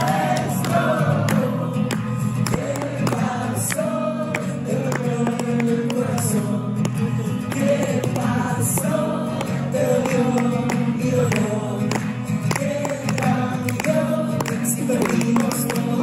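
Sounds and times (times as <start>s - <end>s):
strummed acoustic guitar: 0.0s - 16.0s.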